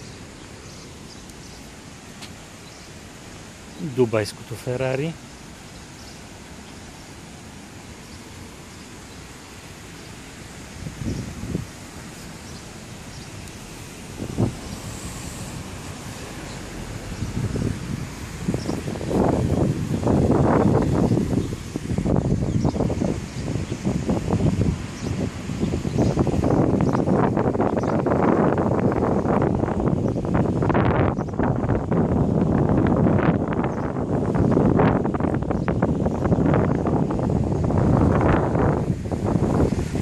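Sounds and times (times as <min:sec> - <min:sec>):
wind gusts buffeting microphone: 0:00.0 - 0:40.0.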